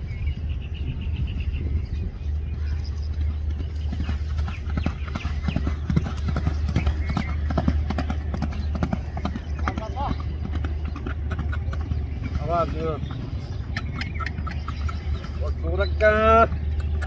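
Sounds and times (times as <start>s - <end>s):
low rumble: 0.0s - 17.0s
horse hoofbeats galloping on dirt: 2.5s - 17.0s.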